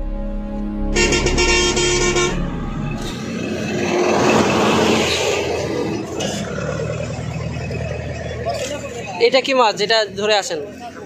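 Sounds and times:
vehicle horn: 0.9 - 3.2
vehicle passing: 1.0 - 11.0.

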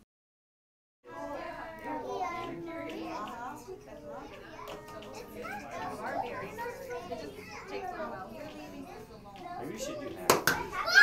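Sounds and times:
children talking and calling out: 1.1 - 11.0.

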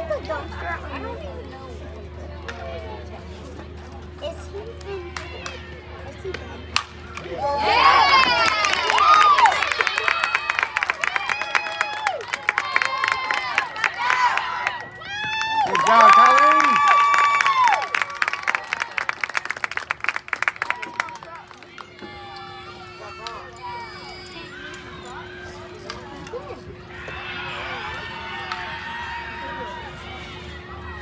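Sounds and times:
crowd cheering and shouting: 4.9 - 19.1, 20.6 - 31.0
crowd clapping: 8.0 - 22.0.

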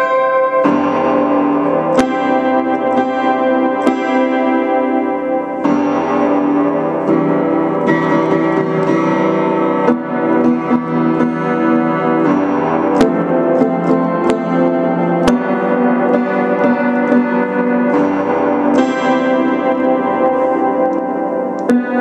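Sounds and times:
piano chords: 0.0 - 22.0.

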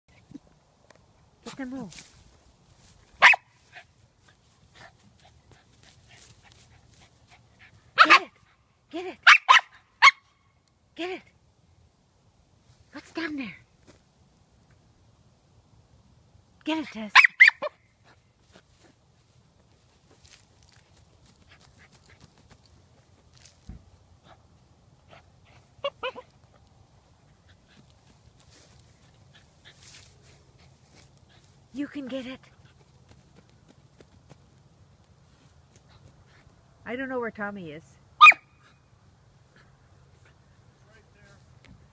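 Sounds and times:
dog barking: 3.2 - 3.5, 8.0 - 8.3, 9.2 - 10.2, 17.2 - 17.8, 38.2 - 38.5
thump: 23.6 - 23.9.

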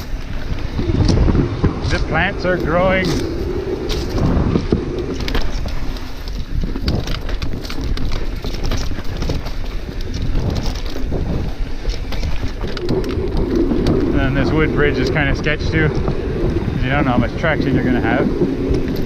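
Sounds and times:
bike clicks and rattles: 0.0 - 19.0
bike tyre rumble: 0.0 - 19.0
wind buffeting microphone: 0.0 - 19.0.

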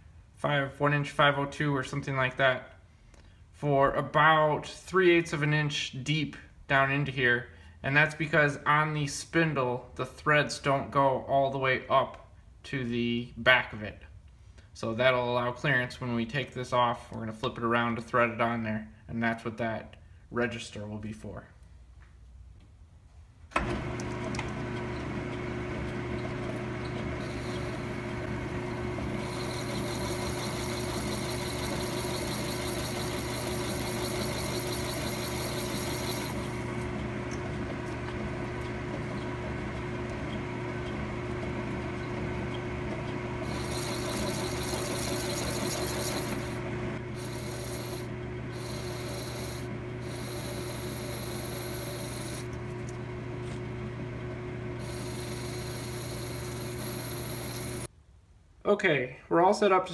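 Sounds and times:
lathe motor hum: 23.6 - 57.9.

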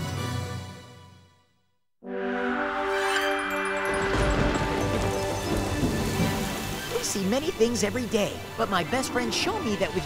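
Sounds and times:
music: 0.0 - 10.0
rain hissing: 4.2 - 10.0.

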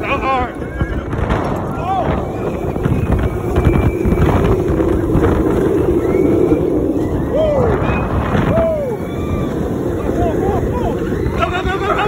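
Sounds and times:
riders shouting and whooping: 0.0 - 12.0
roller coaster train rumbling: 0.0 - 12.0
wind rushing over microphone: 0.0 - 12.0.

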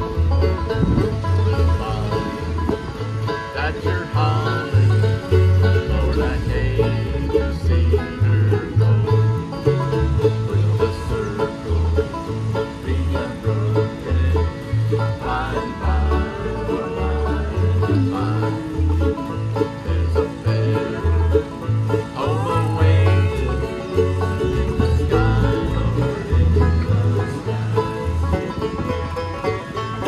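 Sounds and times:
bass stepping between low notes: 0.0 - 30.0
bluegrass band playing: 0.0 - 30.0.

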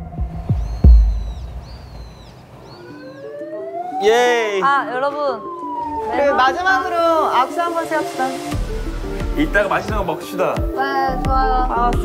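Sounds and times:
deep boom rumble: 0.0 - 2.4
bird calling: 0.0 - 4.9.

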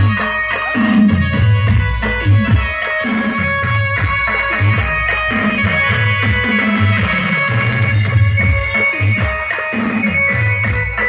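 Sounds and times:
dance music over sound system: 0.0 - 11.0.

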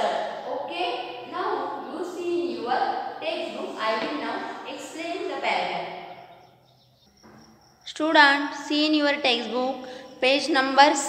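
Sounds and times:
woman speaking: 0.0 - 5.9, 7.9 - 11.0.

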